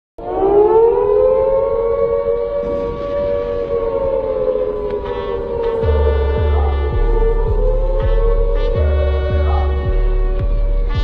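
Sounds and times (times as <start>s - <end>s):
air-raid siren wail: 0.2s - 11.0s
low bass beat: 4.5s - 11.0s.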